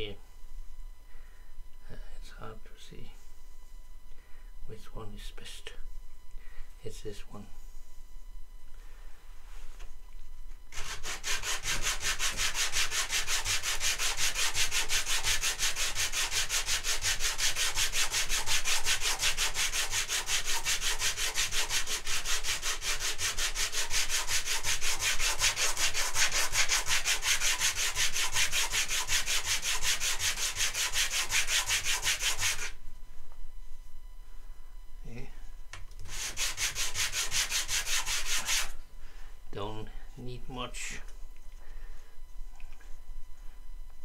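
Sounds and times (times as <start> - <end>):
wood sanded on sandpaper: 10.8 - 32.8, 36.1 - 38.7.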